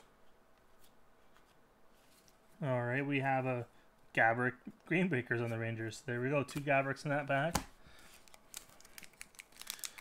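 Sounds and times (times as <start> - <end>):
foil wrapper crinkling: 8.2 - 10.0.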